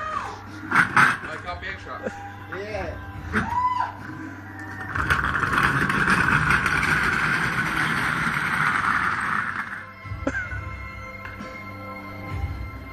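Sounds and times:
background music: 0:00.0 - 0:12.9
armchair grinding over asphalt: 0:04.8 - 0:09.9.

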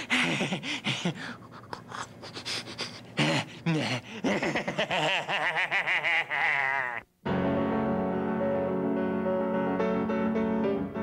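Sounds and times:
man vocalizing and panting: 0:00.0 - 0:04.8
upright piano playing: 0:07.2 - 0:11.0.

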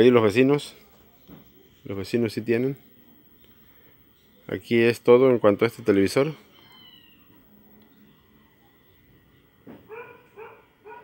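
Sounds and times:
dog yapping: 0:09.9 - 0:11.0.

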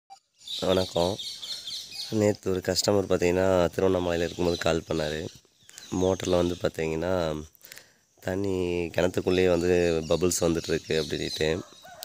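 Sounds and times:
birds chirping: 0:00.1 - 0:12.0
man speaking: 0:00.6 - 0:01.2, 0:02.1 - 0:07.6, 0:08.2 - 0:11.7.

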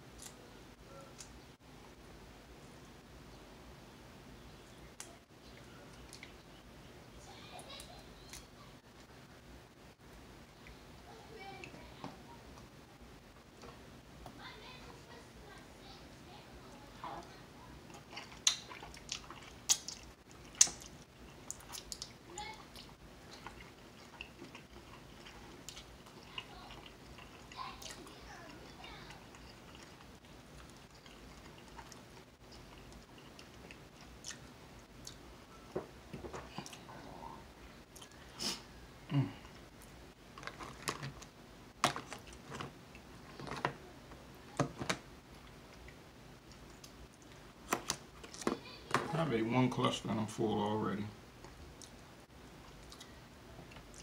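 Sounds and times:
man chewing wetly: 0:17.8 - 0:35.4, 0:37.8 - 0:43.6, 0:51.4 - 0:54.0
mouth clicks and smacks: 0:17.9 - 0:22.2.

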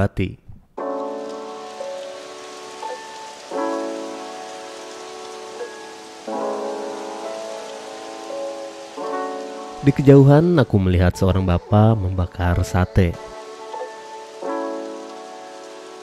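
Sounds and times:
slow held chords music: 0:00.8 - 0:16.0.

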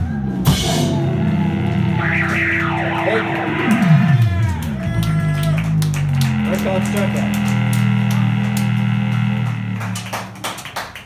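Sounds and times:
electric guitars and bass chord: 0:00.3 - 0:10.7.

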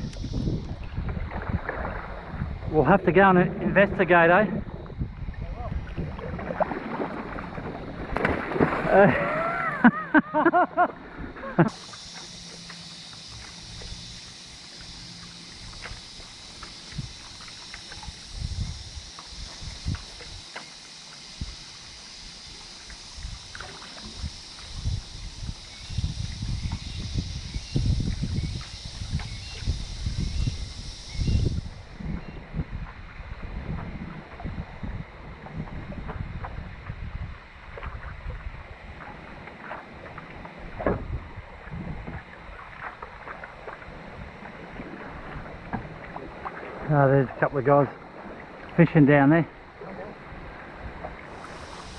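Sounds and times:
wind gusts on microphone: 0:00.0 - 0:09.6, 0:16.8 - 0:20.5, 0:23.1 - 0:43.0
paddle strokes through water: 0:00.0 - 0:09.8, 0:10.7 - 0:27.2, 0:27.8 - 0:51.9
water lapping around board: 0:00.0 - 0:26.8, 0:31.8 - 0:51.9
high steady hiss: 0:08.1 - 0:51.9.

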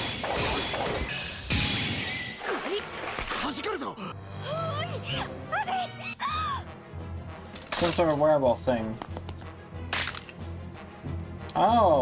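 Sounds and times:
low pulsing background music: 0:04.1 - 0:12.0.

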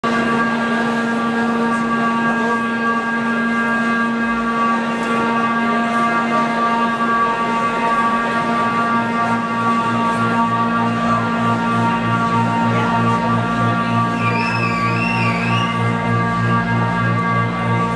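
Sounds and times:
pulsing low note: 0:00.0 - 0:17.9
sustained drone chord: 0:00.0 - 0:17.9.

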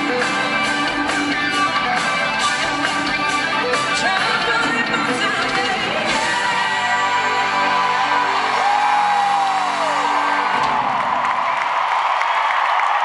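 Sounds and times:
crowd cheering and whooping: 0:06.1 - 0:13.0.

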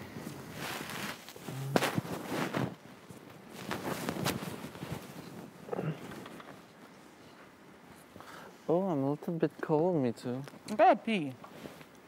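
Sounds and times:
rustles and clicks on couches: 0:00.0 - 0:08.5, 0:09.6 - 0:12.0.

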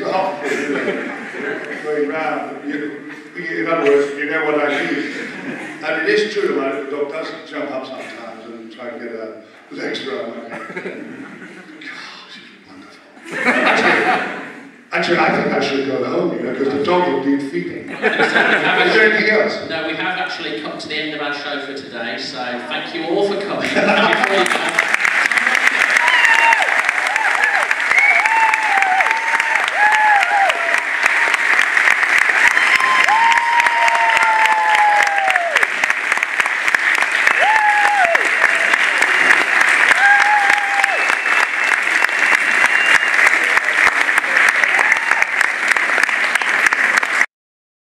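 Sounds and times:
audience applauding: 0:23.6 - 0:47.3.

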